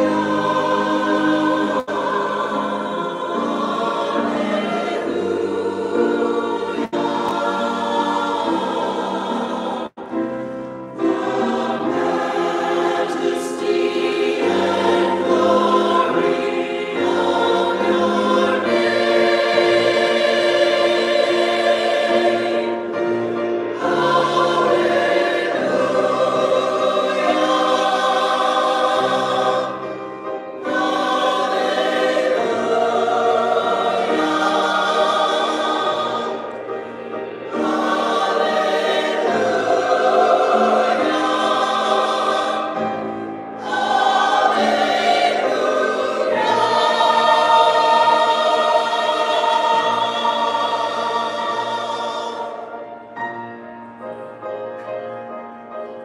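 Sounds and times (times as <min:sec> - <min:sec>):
congregation singing a hymn: 0:00.0 - 0:56.0
keyboard accompaniment: 0:00.0 - 0:56.0.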